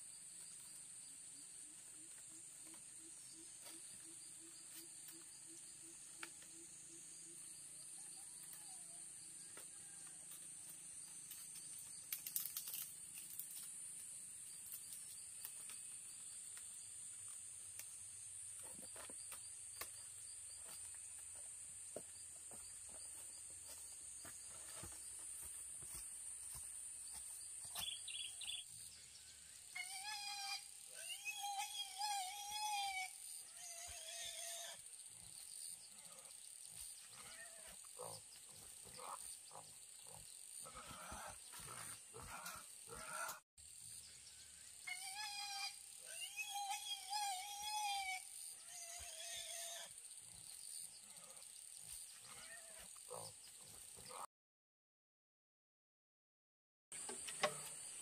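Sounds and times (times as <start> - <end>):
wild boar squealing: 29.8 - 34.8, 44.9 - 49.9.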